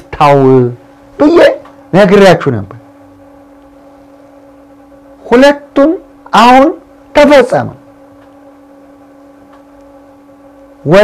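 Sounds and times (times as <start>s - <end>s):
faint hum with hiss: 0.0s - 11.0s.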